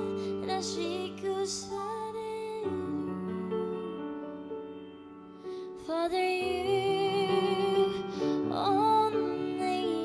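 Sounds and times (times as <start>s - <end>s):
woman singing: 0.0s - 4.4s, 5.6s - 10.0s
grand piano chords: 0.0s - 10.0s.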